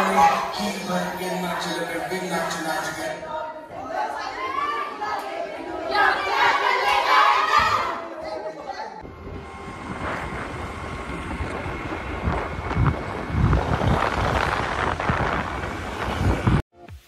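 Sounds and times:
road and traffic rumble: 0:09.0 - 0:16.6
wind buffeting microphone: 0:09.0 - 0:16.6.

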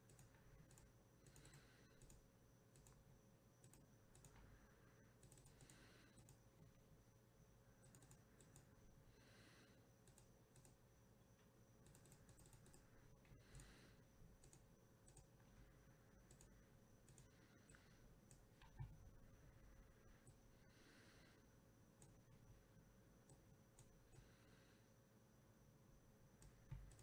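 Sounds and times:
computer keyboard and mouse clicks: 0:00.0 - 0:04.5, 0:05.2 - 0:06.7, 0:07.8 - 0:08.8, 0:10.0 - 0:10.8, 0:11.8 - 0:13.8, 0:14.4 - 0:15.4, 0:16.2 - 0:19.0, 0:26.4 - 0:27.0.

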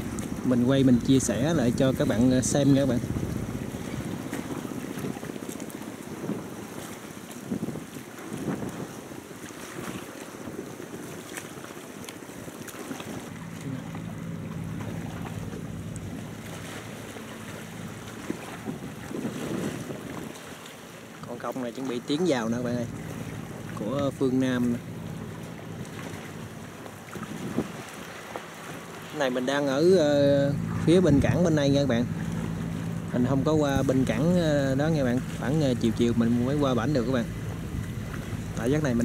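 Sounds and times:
low engine hum: 0:00.0 - 0:39.0
wind on microphone: 0:00.0 - 0:39.0.

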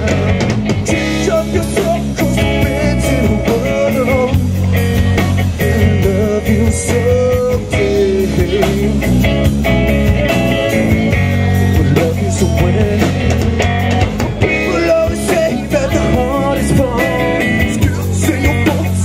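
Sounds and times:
rock band playing: 0:00.0 - 0:19.0.

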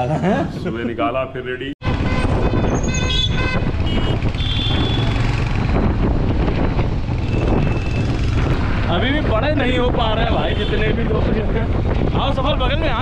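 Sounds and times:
vehicle horn honks: 0:01.8 - 0:05.2
motorcycle engine rumble: 0:01.8 - 0:13.0.

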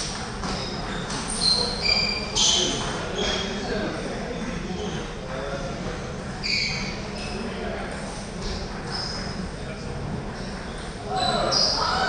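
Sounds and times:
table tennis balls bouncing: 0:00.0 - 0:01.4
voices in a hall: 0:00.0 - 0:12.0.

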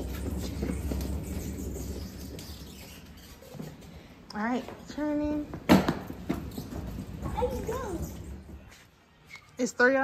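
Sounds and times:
cart rolling on concrete floor: 0:00.0 - 0:08.9.

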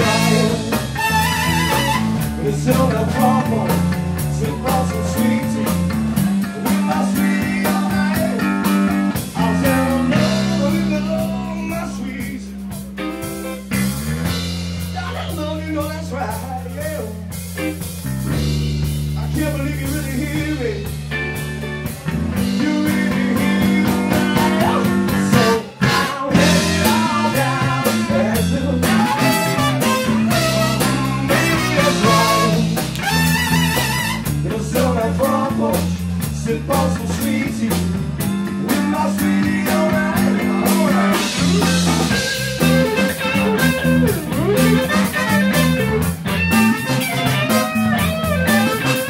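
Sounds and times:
trumpet: 0:00.0 - 0:02.4, 0:28.9 - 0:34.4, 0:44.5 - 0:49.0
electric guitar: 0:00.0 - 0:15.7, 0:17.0 - 0:49.0
bass notes: 0:00.0 - 0:49.0
blues band playing: 0:00.0 - 0:49.0
drums: 0:00.0 - 0:49.0.

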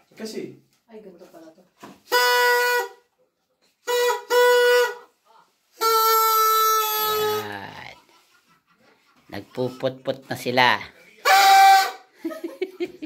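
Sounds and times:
party horn blasts: 0:02.0 - 0:03.1, 0:03.8 - 0:05.1, 0:05.8 - 0:07.6, 0:11.2 - 0:12.1.

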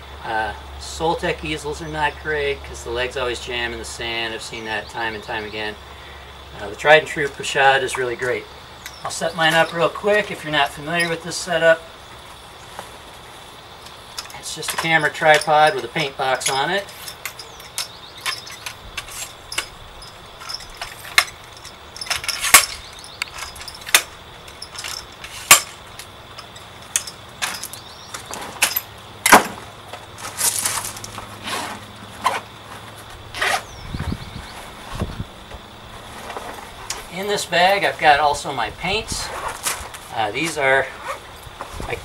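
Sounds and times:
gear handled at a backpack: 0:30.2 - 0:35.1, 0:39.2 - 0:40.1, 0:41.0 - 0:41.9.

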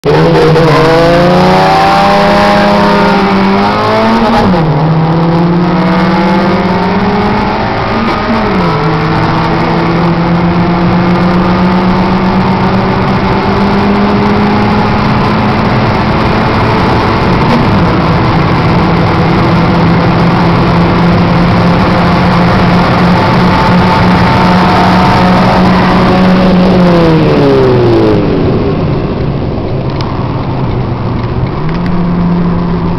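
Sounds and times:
car engine revving at speed: 0:00.0 - 0:32.9
road and wind noise: 0:00.0 - 0:32.9.

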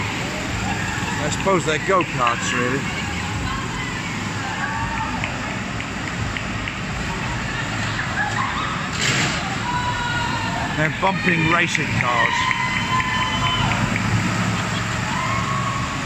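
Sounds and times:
steady rumble: 0:00.0 - 0:11.2
go-kart motors whining: 0:00.0 - 0:16.0.

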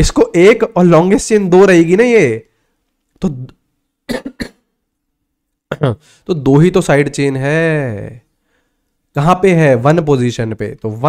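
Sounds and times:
man coughing: 0:04.1 - 0:04.7, 0:05.7 - 0:06.1.

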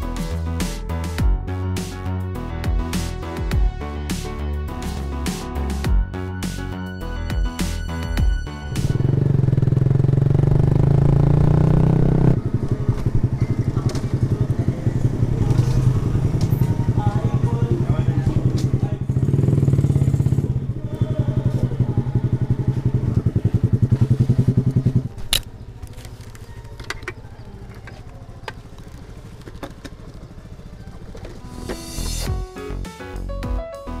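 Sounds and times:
small motorcycle engine running: 0:08.8 - 0:32.0.

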